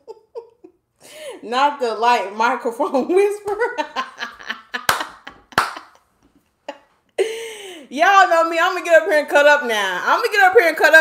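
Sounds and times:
laughter: 0.0s - 0.8s, 3.6s - 7.4s
sharp hand claps: 4.9s - 6.0s.

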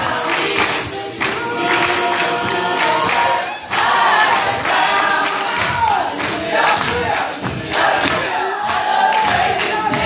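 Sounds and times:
group singing gospel song: 0.0s - 10.0s
rhythmic hand clapping: 0.0s - 10.0s.

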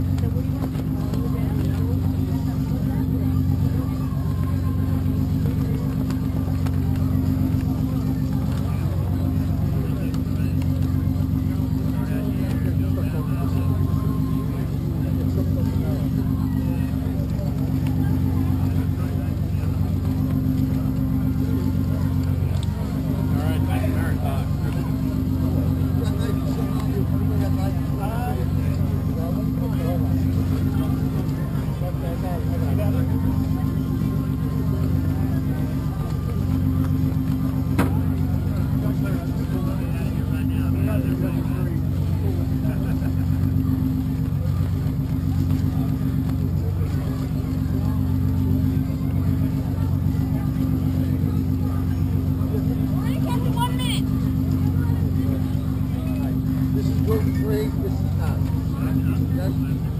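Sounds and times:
indistinct voices chattering: 0.0s - 59.9s
low machinery drone: 0.0s - 59.9s.

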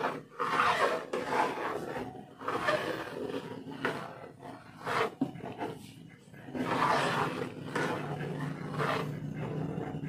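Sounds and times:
spoon scraping metal pan: 0.0s - 9.9s
steady low hum: 1.2s - 10.0s.

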